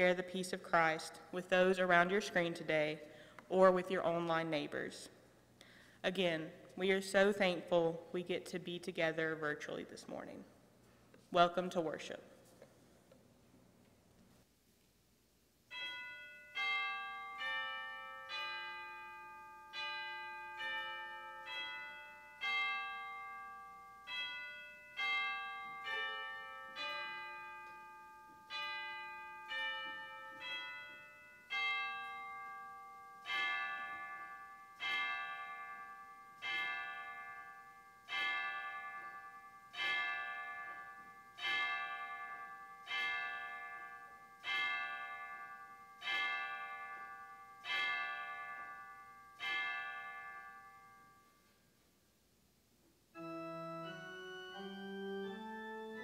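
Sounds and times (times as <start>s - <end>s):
bells ringing: 15.7s - 51.5s, 53.2s - 56.0s.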